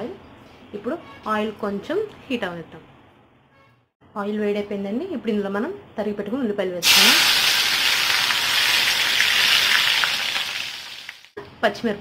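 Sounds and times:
onions sizzling in hot oil: 0:06.8 - 0:11.4.

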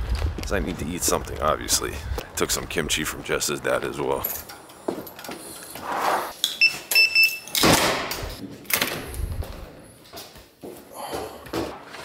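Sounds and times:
short electronic beeps: 0:06.6 - 0:07.5.

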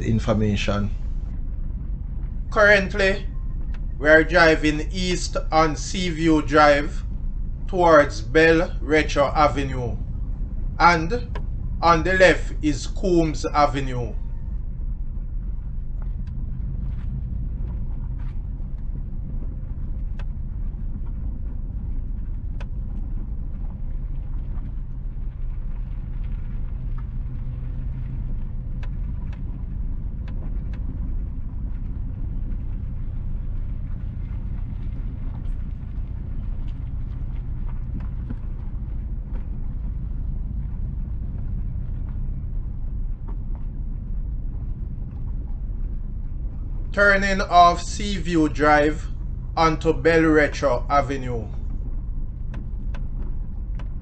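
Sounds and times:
faint ticks and clicks: 0:00.0 - 0:54.0.

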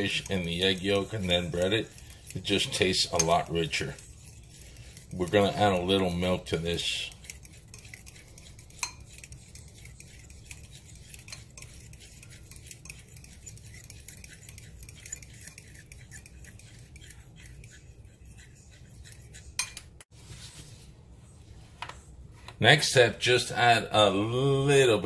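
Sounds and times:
fork clinking on bowl: 0:00.0 - 0:04.1, 0:07.0 - 0:17.9, 0:19.3 - 0:19.9
fork beating eggs in a bowl: 0:00.0 - 0:20.1.

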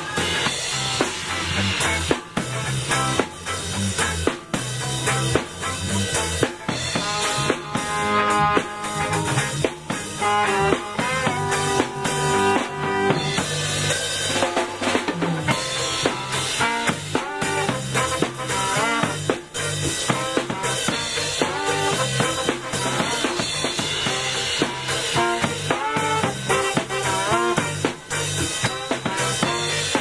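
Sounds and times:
bass: 0:00.0 - 0:30.0
drum kit: 0:00.0 - 0:30.0
trombone and saxophone horn line: 0:00.0 - 0:30.0.

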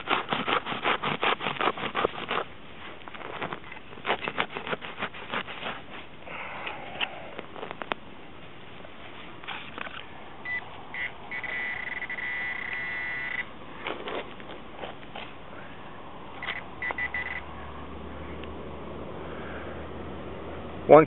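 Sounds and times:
digging in dirt: 0:00.0 - 0:17.4
metal detector beeps: 0:10.4 - 0:13.5, 0:16.4 - 0:17.4
metal detector high tone: 0:10.4 - 0:13.5, 0:16.4 - 0:17.4.

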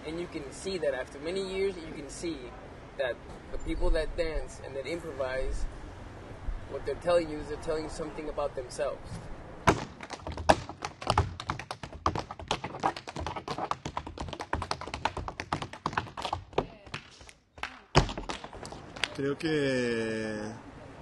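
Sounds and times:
hard stomp: 0:09.7 - 0:18.8
tap shoes on wooden floor: 0:09.7 - 0:19.1.

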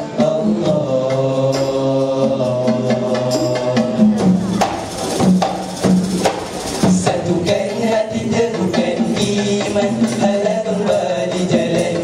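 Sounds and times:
group singing held chord: 0:00.0 - 0:04.2
percussion playing steady beat: 0:00.0 - 0:12.0
low drum tone: 0:02.2 - 0:12.0.

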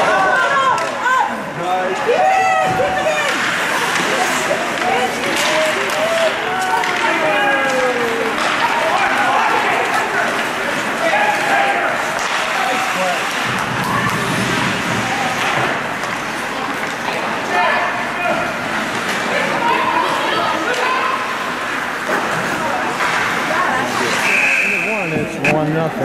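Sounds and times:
spectators chattering: 0:00.0 - 0:26.0.

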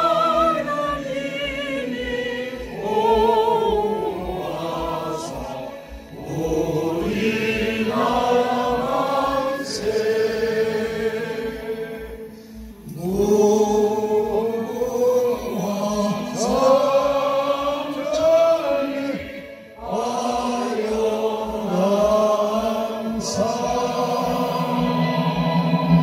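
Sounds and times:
group singing in unison: 0:00.0 - 0:26.0.

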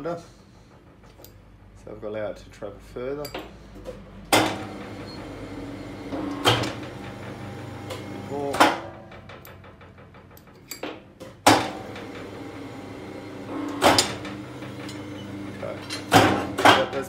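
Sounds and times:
loud knocks: 0:04.3 - 0:17.0
electric motor humming: 0:04.6 - 0:08.6, 0:11.7 - 0:16.7.

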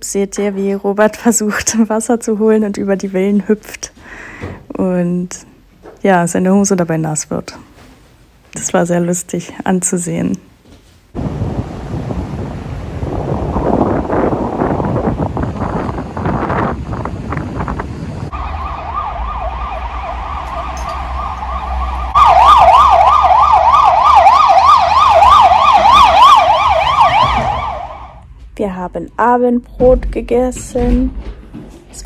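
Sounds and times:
wind: 0:11.1 - 0:32.0
sea surf: 0:11.2 - 0:15.6
emergency vehicle siren: 0:17.8 - 0:28.2.

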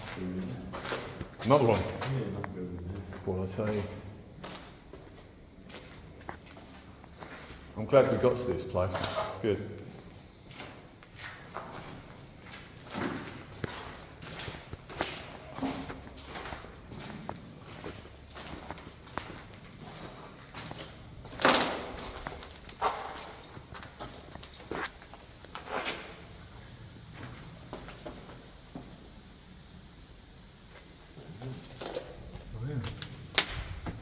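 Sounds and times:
footsteps on debris: 0:00.0 - 0:28.5.

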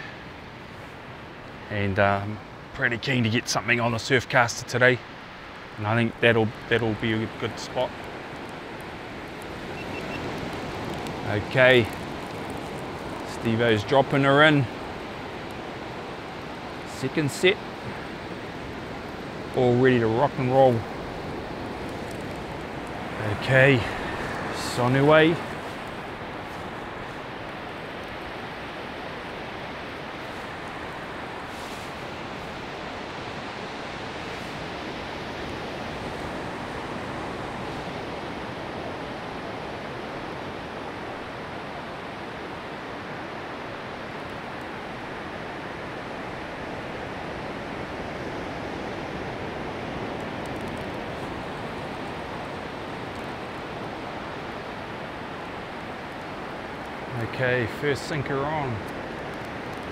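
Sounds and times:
surf breaking on beach: 0:05.0 - 0:59.9.

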